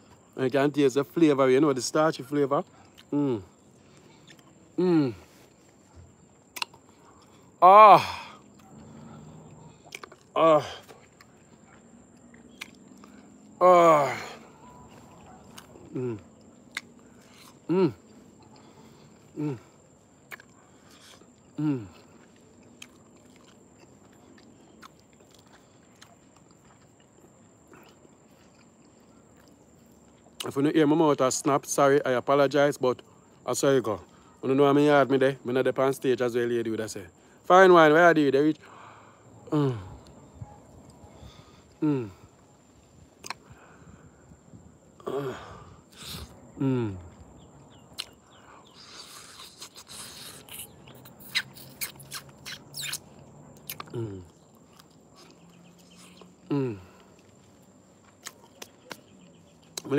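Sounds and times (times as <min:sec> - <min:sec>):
chewing fruit: 0:01.0 - 0:31.8, 0:38.1 - 0:59.9
soft mouth clicks and smacks: 0:05.6 - 0:07.5, 0:09.8 - 0:10.3, 0:10.9 - 0:13.5, 0:14.8 - 0:19.3, 0:20.3 - 0:30.6, 0:43.2 - 0:43.5, 0:47.0 - 0:56.4, 0:57.0 - 0:59.9
faint bird chirps: 0:11.4 - 0:19.8, 0:38.7 - 0:44.4, 0:46.0 - 0:57.1.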